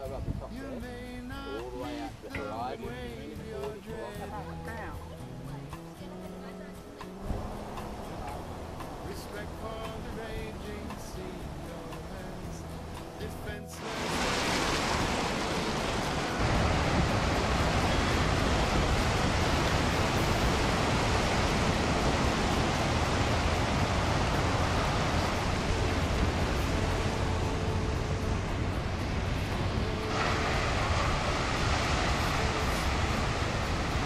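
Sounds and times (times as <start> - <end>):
wind rumble on microphone: 0.0 - 1.4, 7.1 - 34.0
wind: 0.0 - 34.0
breaking surf: 5.4 - 34.0.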